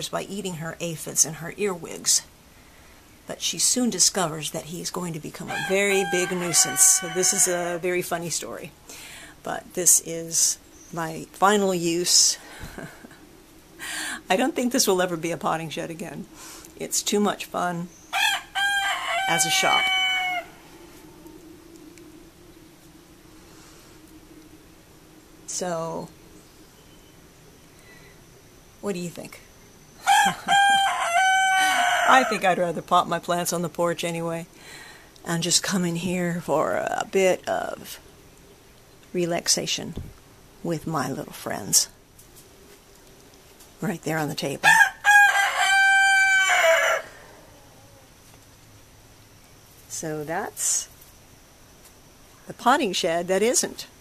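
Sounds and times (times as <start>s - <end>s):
faint low hum: 0.0s - 46.2s
rooster crowing: 5.5s - 7.8s, 18.1s - 21.4s, 30.0s - 32.5s, 44.6s - 48.1s.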